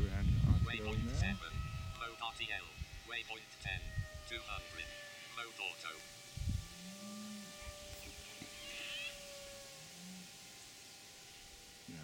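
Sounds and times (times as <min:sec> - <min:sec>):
electric motor and propeller drone: 0:00.0 - 0:12.0
animal calls: 0:00.7 - 0:12.0.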